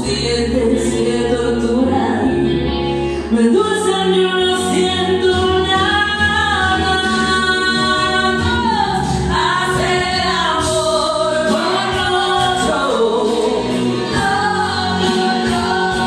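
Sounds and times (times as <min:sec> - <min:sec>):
karaoke backing track: 0:00.0 - 0:16.0
woman singing into microphone: 0:00.0 - 0:16.0.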